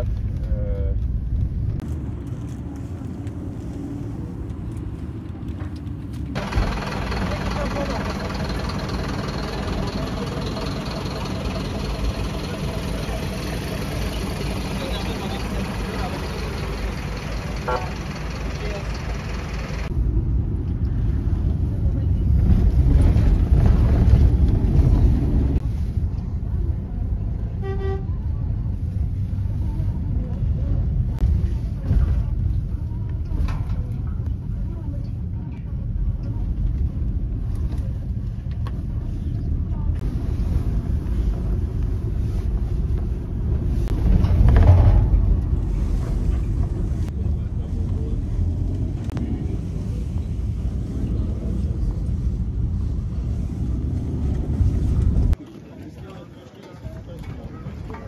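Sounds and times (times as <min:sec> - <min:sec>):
vehicle engine and road rumble: 0:00.0 - 0:58.0
background voices: 0:01.9 - 0:19.9
car horn toot: 0:17.6 - 0:18.1, 0:27.6 - 0:28.2.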